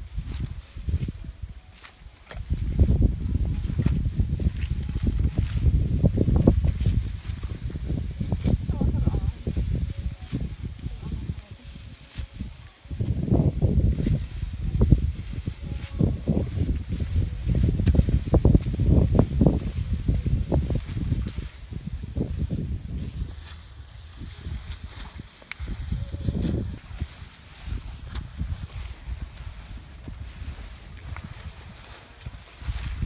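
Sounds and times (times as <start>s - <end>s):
rustling rice stalks: 0.0s - 33.0s
wind buffeting microphone: 0.0s - 33.0s.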